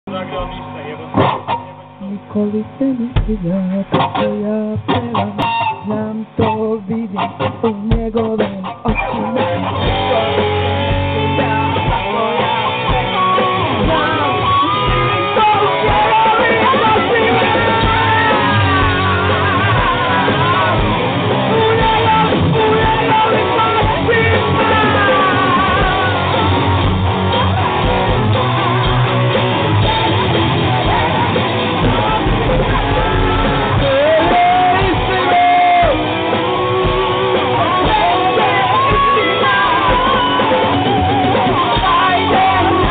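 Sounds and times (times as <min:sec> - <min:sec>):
electric guitar sliding notes: 0:00.0 - 0:42.9
rock band playing live: 0:00.0 - 0:42.9
drum kit: 0:00.1 - 0:02.0, 0:02.8 - 0:42.9
kick drum thumps: 0:03.2 - 0:03.5.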